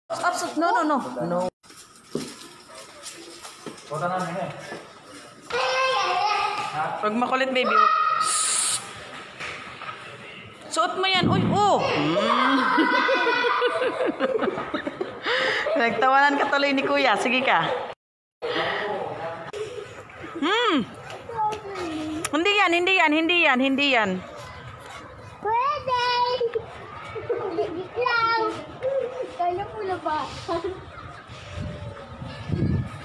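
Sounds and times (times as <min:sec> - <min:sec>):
lobby background noise: 0:00.1 - 0:12.7, 0:15.0 - 0:33.0
child's high-pitched vocal sound: 0:05.5 - 0:06.7, 0:21.3 - 0:22.3
high-pitched hiss: 0:08.2 - 0:08.9.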